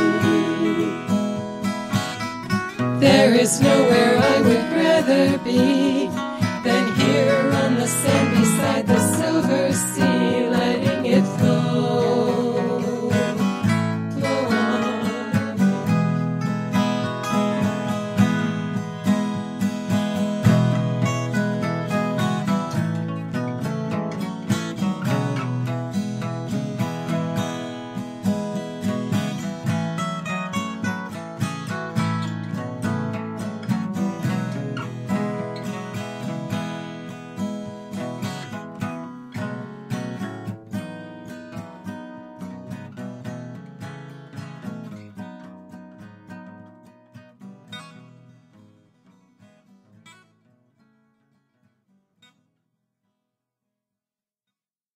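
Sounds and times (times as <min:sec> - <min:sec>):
strummed acoustic guitar: 0:00.0 - 0:52.6.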